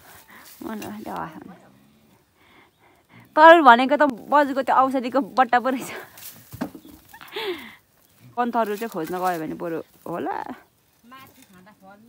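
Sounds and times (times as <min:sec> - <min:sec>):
loose soil scraping: 0:08.0 - 0:12.0.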